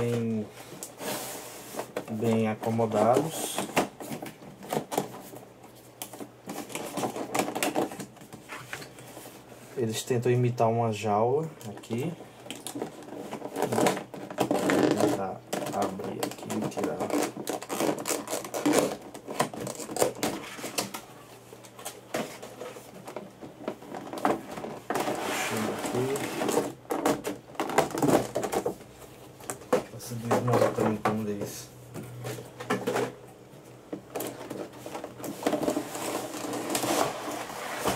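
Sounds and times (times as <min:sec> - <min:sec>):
plastic packaging crinkling: 0:11.6 - 0:31.0, 0:34.1 - 0:37.9.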